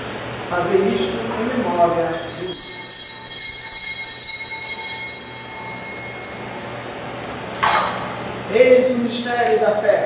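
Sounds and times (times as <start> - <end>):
bells ringing: 2.0 - 8.2.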